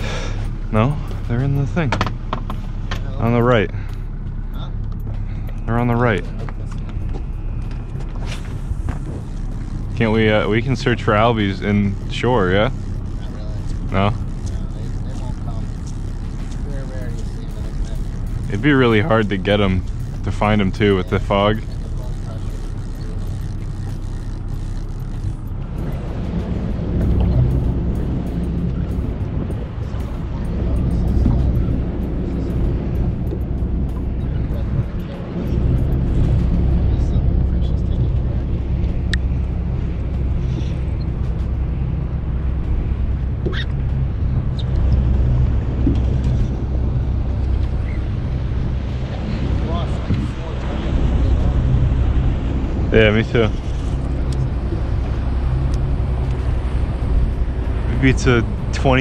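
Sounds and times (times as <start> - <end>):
outboard motor running: 0.0 - 59.0.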